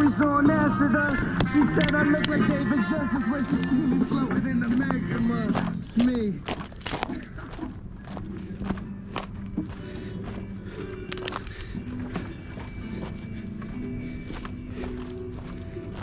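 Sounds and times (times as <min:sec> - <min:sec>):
music playing: 0:00.0 - 0:06.4, 0:07.8 - 0:16.0
footsteps crunching on dry sticks: 0:00.8 - 0:16.0.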